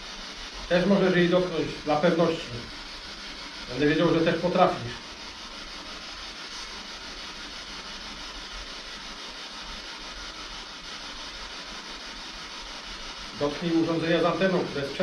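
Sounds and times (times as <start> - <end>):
radio static hiss: 0.7 - 2.8, 3.7 - 5.1, 13.3 - 15.0.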